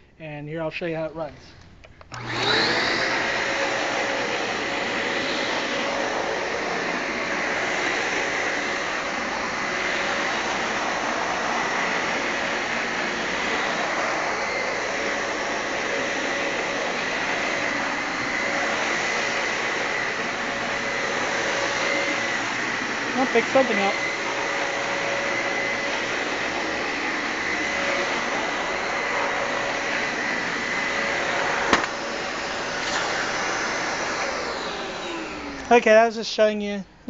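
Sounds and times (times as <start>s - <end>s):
vacuum cleaner running on carpet: 2.1s - 36.1s.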